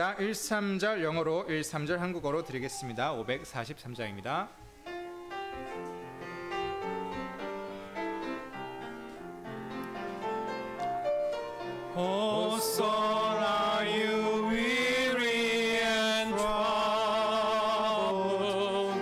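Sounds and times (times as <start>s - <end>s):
piano playing hymn: 4.5s - 19.0s
man singing through microphone: 11.9s - 19.0s.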